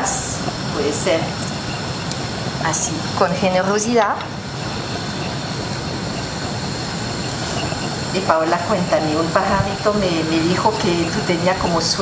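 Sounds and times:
faint high-pitched whines: 0:00.0 - 0:12.0
rushing kitchen background noise: 0:00.0 - 0:12.0.

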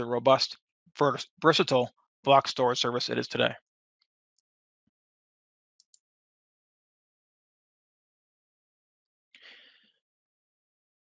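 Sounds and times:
man breathing in: 0:09.4 - 0:10.0.

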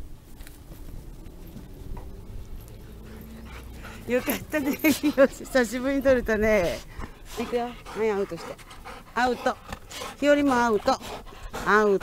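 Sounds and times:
dog panting: 0:02.4 - 0:12.0.

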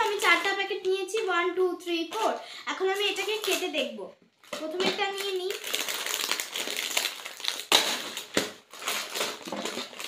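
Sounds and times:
plastic snack packets crinkling: 0:00.0 - 0:01.2, 0:01.9 - 0:10.0.

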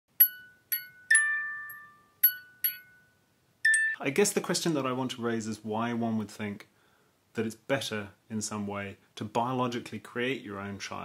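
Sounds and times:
glockenspiel-like jingle: 0:00.1 - 0:04.0.

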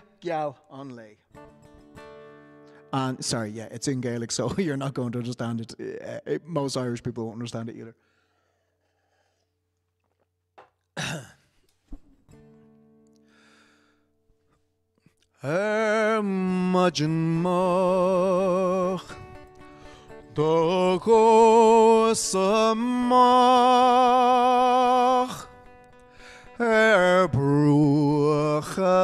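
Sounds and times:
acoustic guitar chord ringing: 0:01.3 - 0:03.0, 0:12.3 - 0:14.0, 0:15.6 - 0:29.0
person breathing: 0:08.0 - 0:09.6, 0:13.2 - 0:14.1, 0:19.7 - 0:20.2, 0:26.1 - 0:26.6
man singing slowly: 0:15.4 - 0:19.4, 0:20.2 - 0:25.7, 0:26.4 - 0:29.0.

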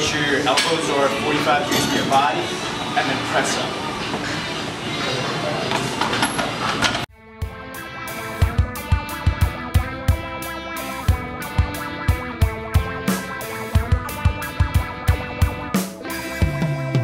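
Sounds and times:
guitar-led background music: 0:07.1 - 0:17.0.

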